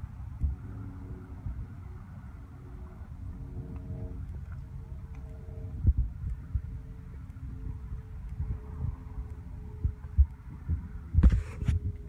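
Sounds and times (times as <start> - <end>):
faint steady hum: 0.0 - 12.0
wind buffeting microphone: 0.0 - 12.0.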